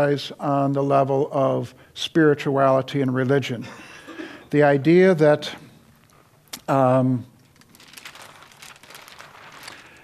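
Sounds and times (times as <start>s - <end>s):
paper sheet rustling: 7.4s - 10.0s.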